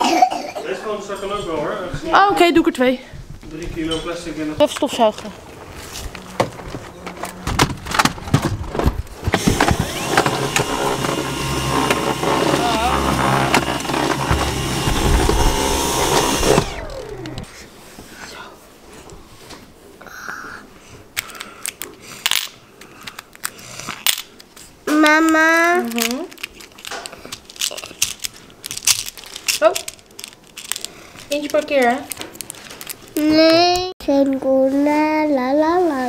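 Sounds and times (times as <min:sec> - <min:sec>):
handling clicks and knocks: 0:03.4 - 0:12.2
vacuum cleaner motor whining: 0:09.3 - 0:17.5.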